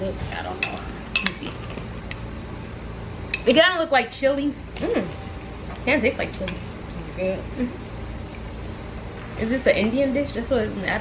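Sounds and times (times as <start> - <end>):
metal spoon clinking on bowl: 0.6 - 1.4, 6.4 - 6.7.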